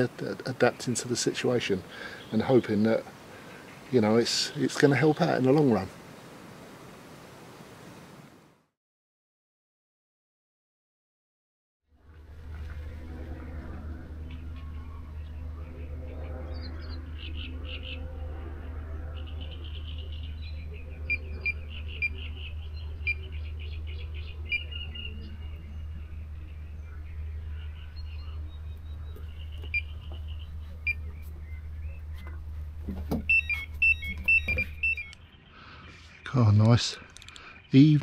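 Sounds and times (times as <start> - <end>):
bite alarm beeps: 21.0 - 22.3, 22.9 - 23.4, 24.4 - 25.3, 29.5 - 31.2, 33.1 - 35.2.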